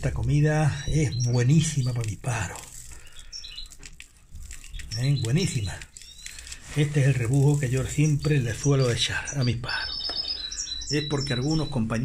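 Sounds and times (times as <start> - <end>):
grains pattering onto feed: 0.9 - 9.1.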